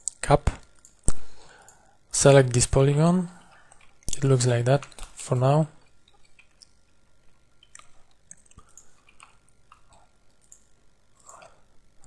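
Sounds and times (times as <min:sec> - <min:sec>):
quiet room hiss: 0:00.0 - 0:12.0
faint small clicks: 0:07.6 - 0:11.4.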